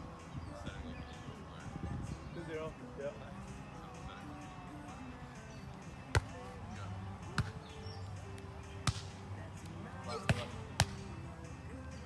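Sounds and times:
hands slapping volleyball: 6.1s - 6.4s, 7.3s - 7.6s, 8.3s - 9.7s, 10.3s - 11.0s.

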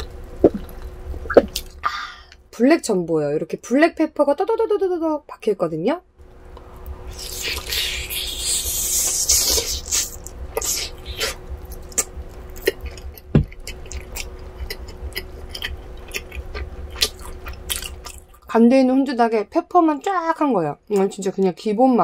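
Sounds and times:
wet chewing with clicks: 0.4s - 1.8s, 9.0s - 18.5s.

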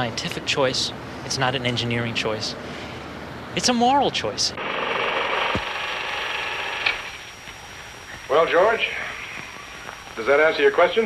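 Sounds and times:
film projector clattering: 4.6s - 7.6s
projector click: 6.8s - 7.6s.

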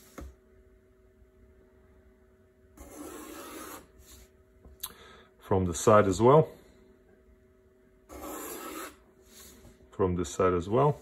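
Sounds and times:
pencil scratching along ruler: 2.8s - 4.2s, 8.1s - 9.0s.

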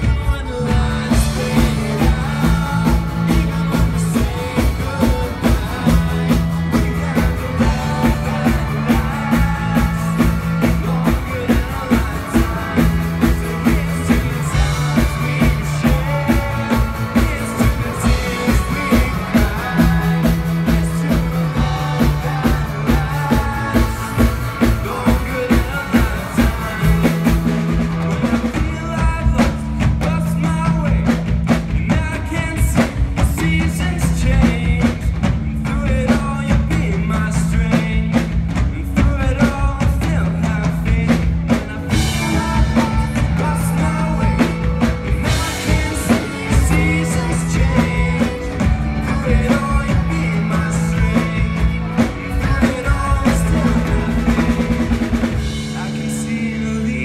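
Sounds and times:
group of singers: 0.0s - 31.1s, 31.7s - 57.0s
bass line: 0.0s - 57.0s
drum kit: 0.0s - 57.0s
electric guitar: 0.0s - 57.0s.

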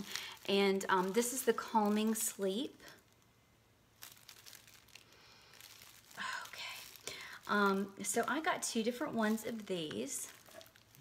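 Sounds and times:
cellophane wrapper crinkling: 0.0s - 11.0s.

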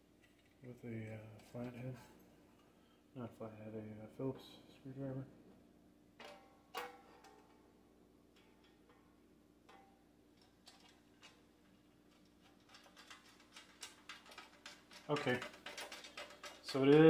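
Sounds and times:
low steady hum: 0.0s - 17.0s
screws clicking in metal bracket: 12.2s - 17.0s.

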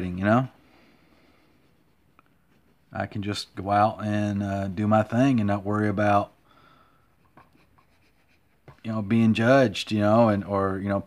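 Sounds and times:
pencil scratching on paper: 7.2s - 8.9s.

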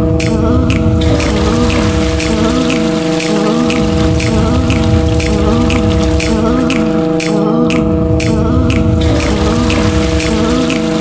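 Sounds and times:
held drone tones: 0.0s - 11.0s.

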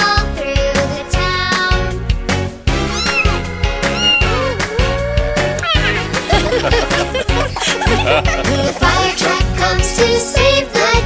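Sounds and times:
upbeat children's music: 0.0s - 11.0s
cat meowing: 2.8s - 6.2s.

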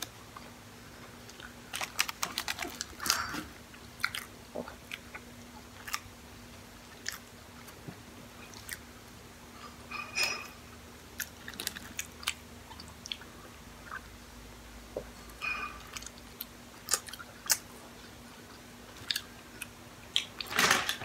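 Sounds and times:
chewing food: 0.0s - 9.2s, 11.2s - 14.1s, 15.8s - 20.5s
faint steady hum: 0.0s - 21.0s.

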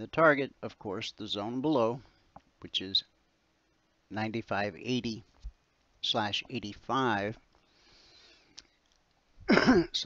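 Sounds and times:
soft breath: 7.6s - 8.8s
man clearing his throat: 9.5s - 10.0s.

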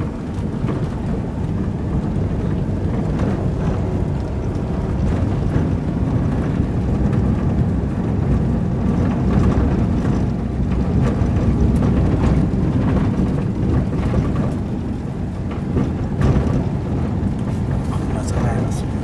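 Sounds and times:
minibus engine rumble: 0.0s - 19.0s
road noise: 0.0s - 19.0s.

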